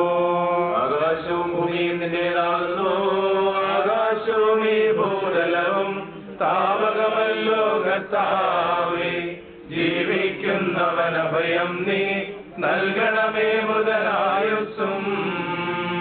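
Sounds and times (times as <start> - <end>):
priests chanting: 0.0 - 16.0.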